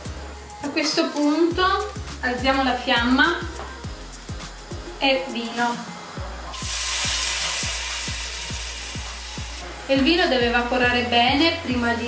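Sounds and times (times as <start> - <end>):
background music beat: 0.0 - 12.0
wine sizzling in a hot pan: 6.4 - 9.7.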